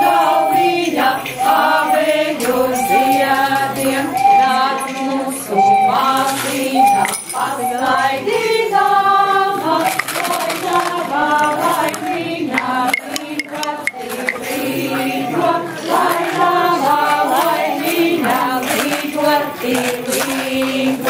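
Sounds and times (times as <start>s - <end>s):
women singing unaccompanied: 0.0s - 21.0s.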